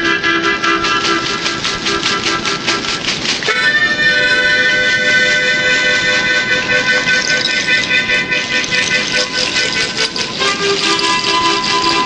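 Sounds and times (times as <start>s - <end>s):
harmonica chord: 3.4s - 12.0s.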